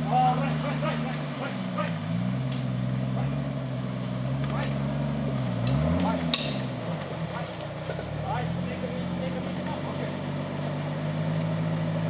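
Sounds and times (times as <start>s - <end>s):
off-road vehicle engine crawling: 0.0s - 12.0s.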